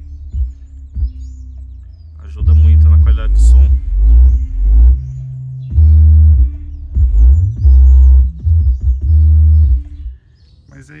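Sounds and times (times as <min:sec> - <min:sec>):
bass-heavy music in car: 0:00.0 - 0:11.0.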